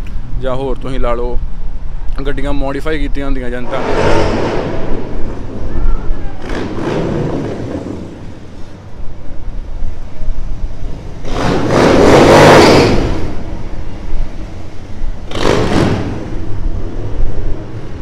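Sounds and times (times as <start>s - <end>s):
rush of noise: 0.0s - 18.0s
street traffic rumble: 0.0s - 18.0s
motorcycles riding past: 3.6s - 9.0s, 10.7s - 18.0s.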